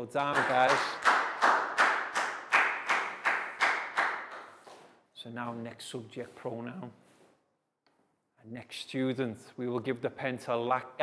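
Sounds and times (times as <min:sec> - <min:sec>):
class clapping in rhythm: 0:00.2 - 0:04.9.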